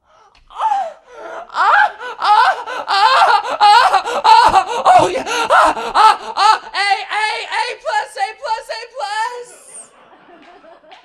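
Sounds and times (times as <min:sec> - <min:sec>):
man moaning into a microphone: 0:01.4 - 0:07.6.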